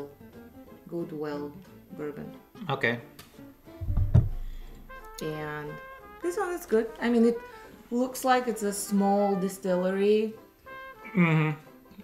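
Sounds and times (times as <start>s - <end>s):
quiet guitar music: 0.0s - 8.7s
glass bottle thumping on table: 3.8s - 4.5s.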